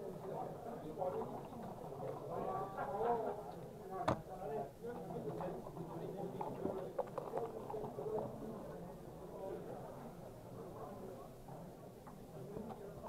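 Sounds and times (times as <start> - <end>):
background chatter of voices: 0.0 - 13.0.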